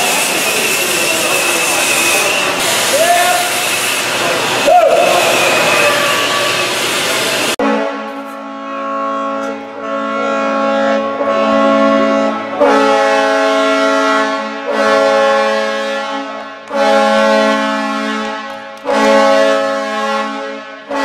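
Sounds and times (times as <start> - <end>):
brass music sustained chords: 7.5 - 21.0.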